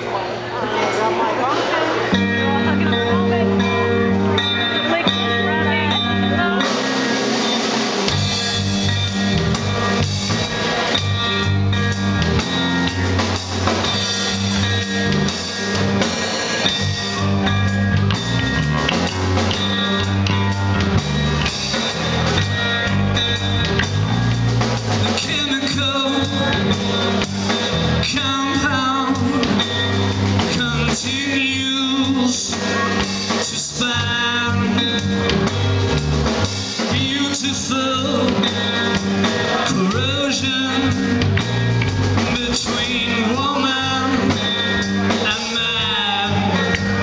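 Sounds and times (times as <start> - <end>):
drum kit: 0.0 - 47.0
electric bass: 0.0 - 47.0
electric guitar: 0.0 - 47.0.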